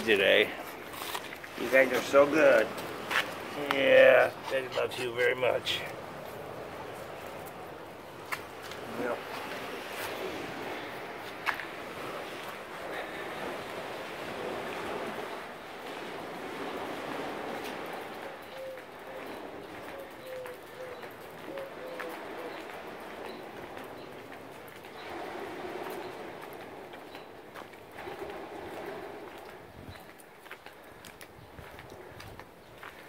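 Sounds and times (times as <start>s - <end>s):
outdoor background hiss: 0.0s - 31.4s
light footsteps: 0.5s - 12.6s, 17.6s - 33.0s
dove cooing: 18.2s - 22.7s.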